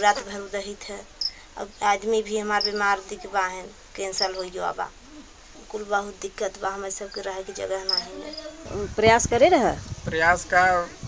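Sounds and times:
woman speaking: 0.0s - 1.0s, 1.6s - 4.9s, 5.6s - 10.9s
high chirps: 1.0s - 5.4s, 7.0s - 8.7s.

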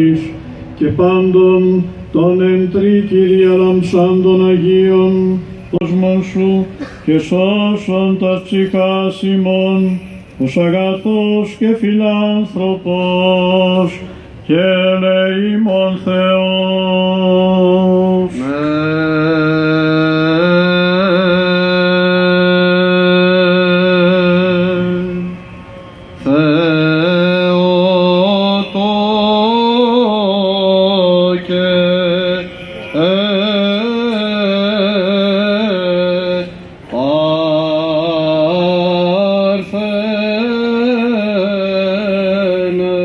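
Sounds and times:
man singing chant: 0.0s - 25.4s, 26.2s - 43.0s.

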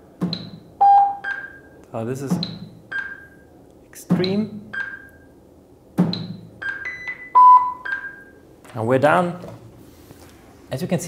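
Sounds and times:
short electronic beeps: 6.2s - 8.4s.

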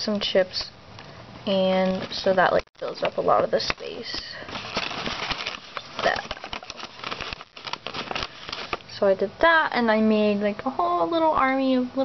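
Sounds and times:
paper and plastic rustling: 1.5s - 9.0s.

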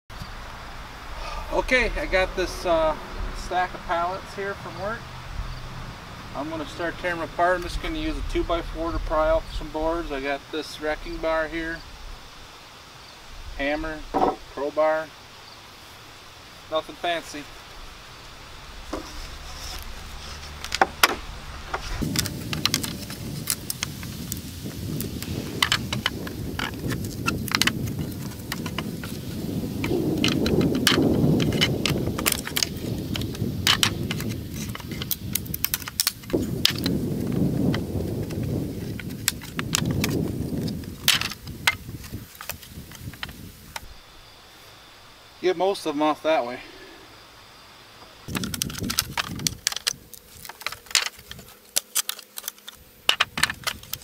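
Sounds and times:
low rumbling noise: 0.1s - 45.4s.

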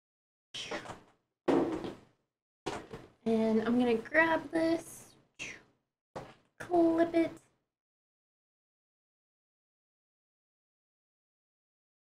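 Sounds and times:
knock-like thud: 1.5s - 2.0s.

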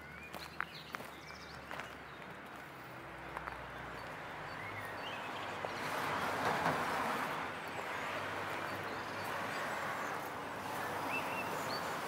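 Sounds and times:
birds chirping: 0.0s - 12.0s
footsteps on gravel: 0.2s - 4.2s.

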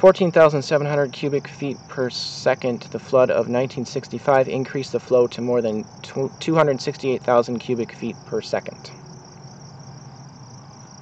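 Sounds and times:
faint low hum: 0.0s - 11.0s
high-pitched insect trill: 0.0s - 11.0s.

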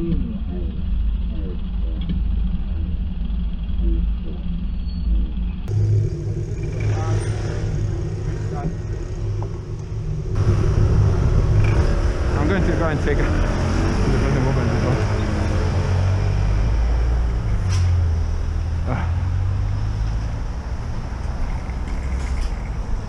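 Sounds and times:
traffic and road rumble: 0.0s - 23.0s.

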